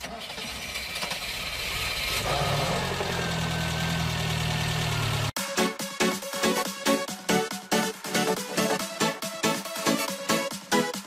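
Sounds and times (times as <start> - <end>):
electronic dance beat: 5.3 - 11.0.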